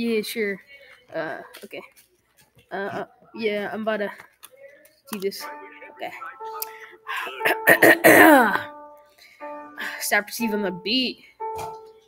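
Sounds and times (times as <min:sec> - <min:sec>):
backing music of held tones: 0:04.5 - 0:12.0
man clearing throat: 0:07.4 - 0:08.6.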